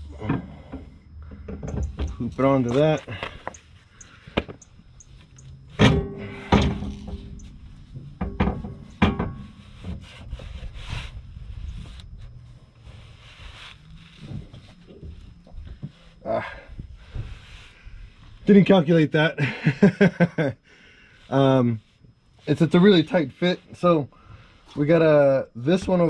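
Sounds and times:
metal rubbing and scraping: 0:01.6 - 0:04.0, 0:04.7 - 0:18.4.

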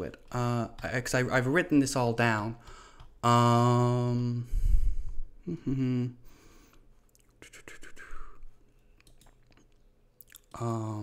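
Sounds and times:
breathy whisper into microphone: 0:07.3 - 0:08.6.

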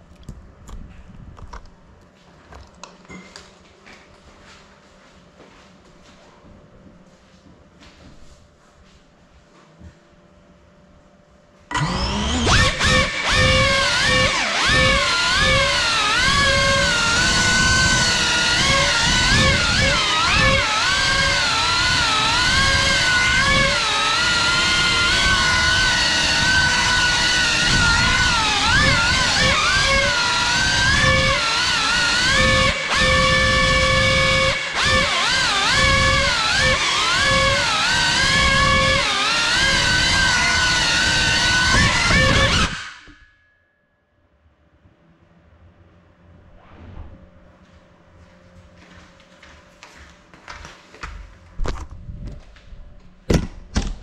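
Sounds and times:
drone motors whining: 0:11.7 - 0:43.3.

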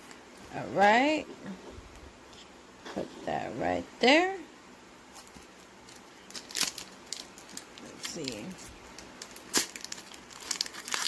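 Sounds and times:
foil wrapper crinkling: 0:05.1 - 0:11.0.

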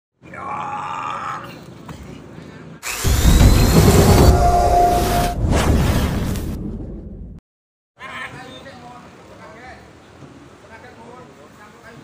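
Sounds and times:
rising whoosh: 0:02.9 - 0:07.4
deep rumble: 0:03.0 - 0:07.4.

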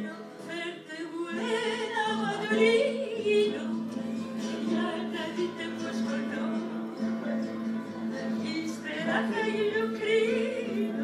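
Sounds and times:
woman singing with vibrato: 0:00.0 - 0:07.0, 0:08.3 - 0:11.0
acoustic guitars: 0:00.0 - 0:11.0.

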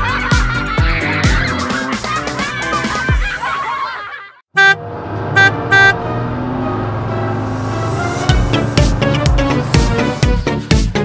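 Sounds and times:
loud horn honks: 0:04.5 - 0:10.4
low music: 0:05.6 - 0:11.0.

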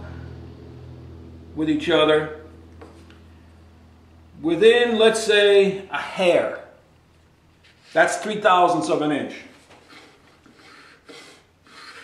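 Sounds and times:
hand tool rubbing plywood: 0:07.6 - 0:08.3, 0:09.5 - 0:12.0.

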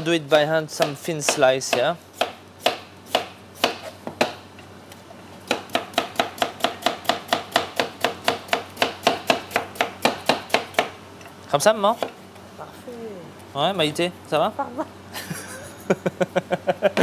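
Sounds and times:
knife slicing potato on board: 0:00.8 - 0:04.4.

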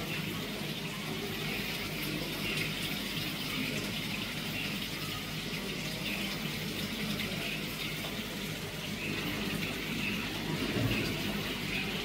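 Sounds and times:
running water rushing: 0:00.0 - 0:12.0.

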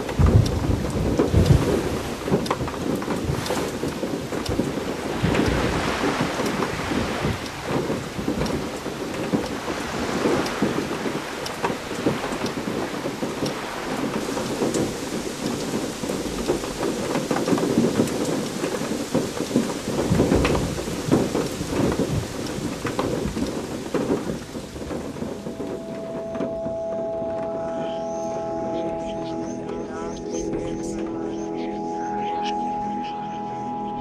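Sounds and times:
heavy rain: 0:00.0 - 0:34.0
thunder rumbling: 0:00.0 - 0:34.0.

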